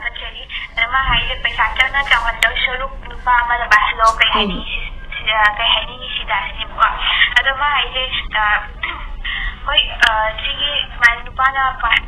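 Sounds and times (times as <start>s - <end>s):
woman talking tinny voice: 0.0s - 9.0s, 9.7s - 12.0s.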